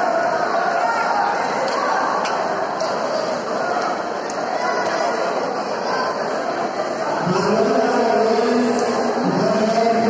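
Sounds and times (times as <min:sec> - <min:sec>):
crowd hubbub: 0:00.0 - 0:10.0.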